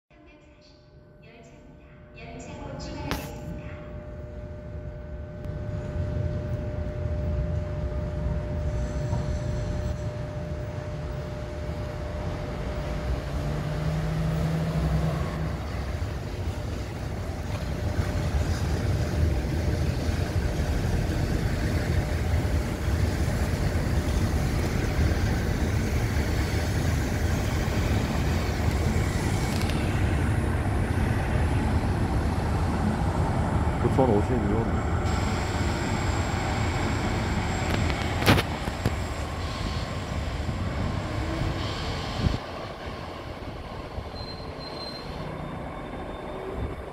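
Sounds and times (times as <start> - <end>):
train rumbling on rails: 2.6 - 46.9.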